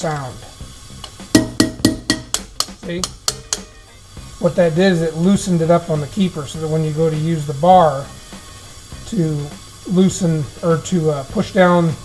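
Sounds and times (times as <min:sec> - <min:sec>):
hammer striking metal socket: 0:01.0 - 0:03.7.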